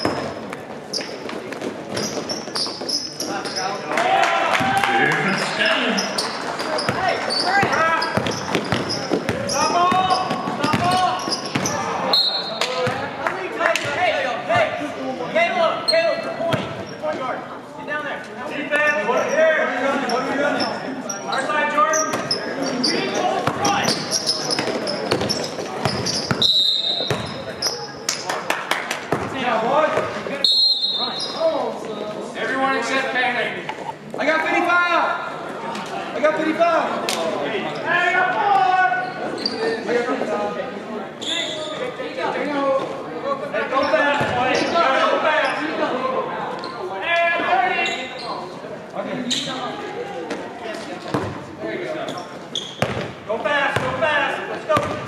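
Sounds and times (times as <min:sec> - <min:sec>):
sneakers squeaking: 0:00.0 - 0:03.9, 0:05.2 - 0:13.2, 0:15.8 - 0:17.4, 0:18.8 - 0:28.3, 0:29.0 - 0:31.8, 0:38.9 - 0:39.9, 0:41.2 - 0:42.0, 0:43.7 - 0:45.8, 0:46.5 - 0:49.8, 0:50.4 - 0:55.0
people shouting and talking: 0:00.0 - 0:55.0
basketball bouncing on court: 0:07.6 - 0:11.8, 0:12.8 - 0:13.1, 0:16.5 - 0:16.8, 0:23.4 - 0:26.4, 0:27.0 - 0:27.5, 0:29.1 - 0:29.4, 0:52.8 - 0:54.0, 0:54.8 - 0:55.0
referee's whistle: 0:12.1 - 0:12.6, 0:26.1 - 0:27.8, 0:30.4 - 0:31.4.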